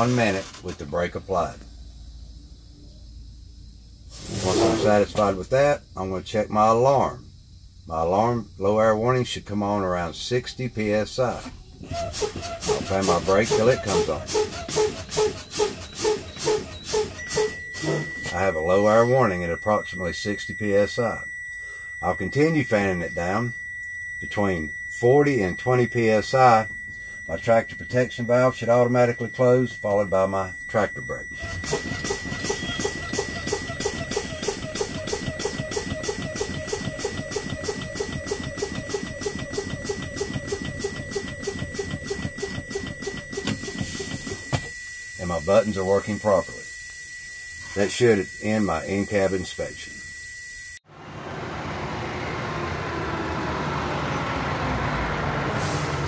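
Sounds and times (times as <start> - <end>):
warning buzzer beeping rapidly: 0.0 - 1.5, 4.0 - 7.2, 7.9 - 50.9
air brakes hissing: 4.1 - 5.0, 11.8 - 18.2, 55.5 - 56.0
air hiss: 4.1 - 5.0.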